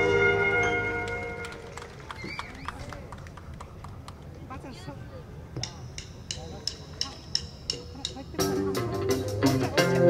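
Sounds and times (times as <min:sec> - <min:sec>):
big band held chord: 0:00.0 - 0:01.6
scattered handclaps: 0:01.0 - 0:04.3.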